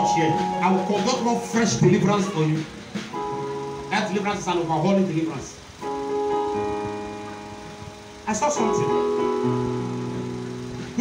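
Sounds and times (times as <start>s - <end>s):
electronic keyboard chord: 0.0s - 11.0s.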